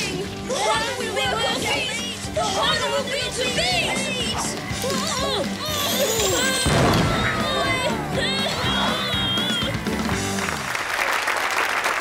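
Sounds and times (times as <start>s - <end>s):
background music: 0.0s - 11.0s
cartoon explosion crash: 6.6s - 7.5s.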